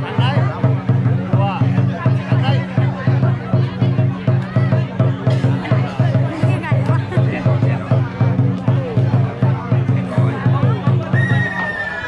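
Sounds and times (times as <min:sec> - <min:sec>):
crowd voices: 0:00.0 - 0:12.0
festival drum beaten rapidly: 0:00.0 - 0:12.0.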